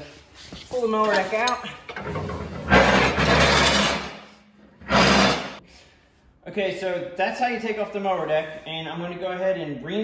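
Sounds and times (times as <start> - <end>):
metal mower deck scraping on concrete: 2.0 - 4.1.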